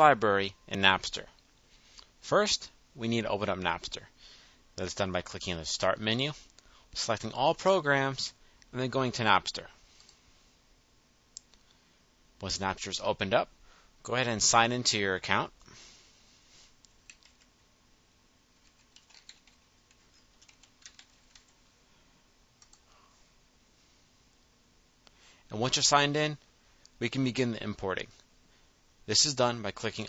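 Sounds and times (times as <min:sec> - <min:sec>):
faint computer clicks: 0:16.8 - 0:17.5, 0:22.6 - 0:22.9
computer mouse click: 0:22.6 - 0:22.9.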